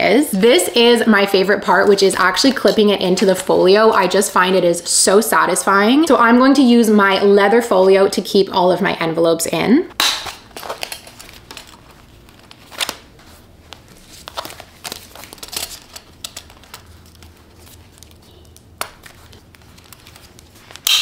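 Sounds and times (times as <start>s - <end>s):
plastic envelopes crinkling: 10.1s - 21.0s.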